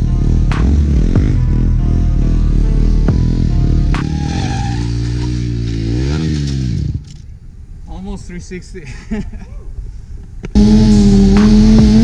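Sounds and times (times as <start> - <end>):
background music with a beat: 0.0 - 4.2, 10.6 - 12.0
motorcycle engine revving: 0.0 - 7.2, 10.5 - 12.0.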